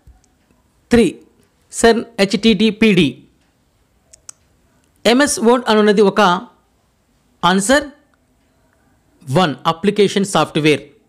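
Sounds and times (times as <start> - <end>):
person speaking: 0.0 - 3.4, 4.0 - 6.6, 7.4 - 11.0.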